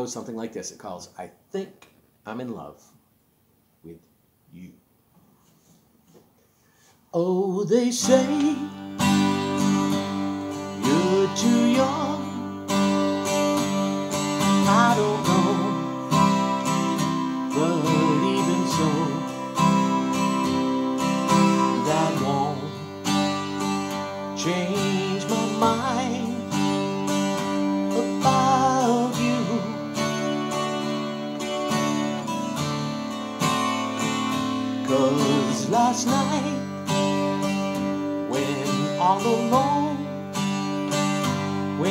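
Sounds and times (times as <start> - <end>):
man singing: 7.1 - 9.0, 10.6 - 12.7, 14.2 - 19.9, 21.0 - 23.3, 24.1 - 30.4, 34.5 - 40.3, 41.5 - 41.9
strummed acoustic guitar: 7.2 - 41.9.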